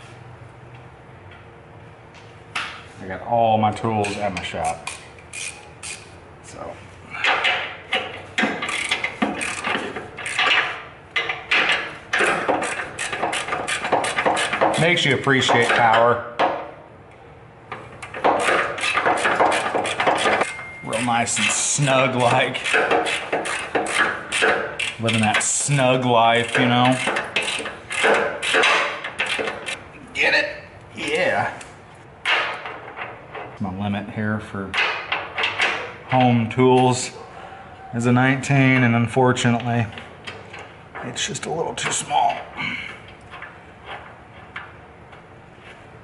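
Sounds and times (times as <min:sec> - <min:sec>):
ratchet wrench clicking: 0:04.1 - 0:06.1, 0:07.2 - 0:11.8, 0:22.6 - 0:25.5
metal clinks and scrapes of tools: 0:07.1 - 0:16.1, 0:18.0 - 0:25.8.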